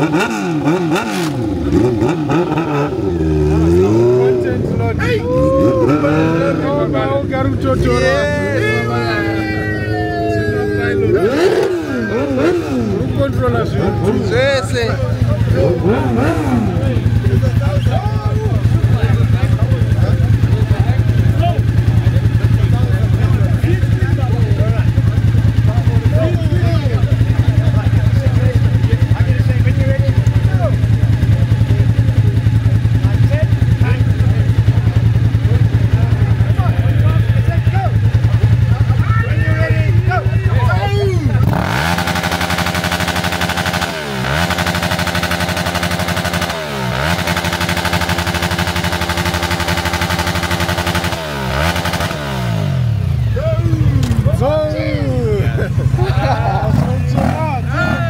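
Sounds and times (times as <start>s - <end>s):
motorcycle engine idling and revving: 0.0s - 58.0s.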